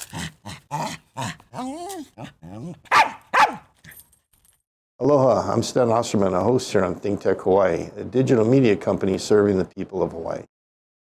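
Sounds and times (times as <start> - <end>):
small dog yapping and barking: 0.7 - 4.0.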